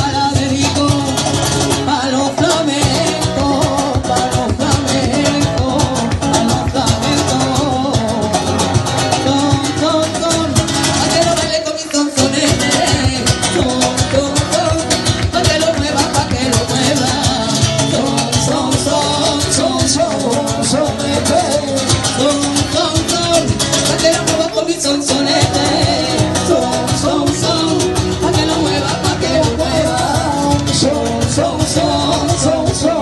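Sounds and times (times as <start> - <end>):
strummed guitar: 0.0 - 33.0
woman singing into a microphone: 1.8 - 8.5.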